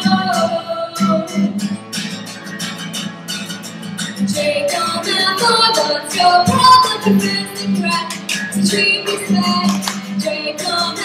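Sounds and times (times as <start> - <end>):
woman singing: 0.0 - 1.5, 4.3 - 11.0
acoustic guitar over steady beat: 0.0 - 11.0.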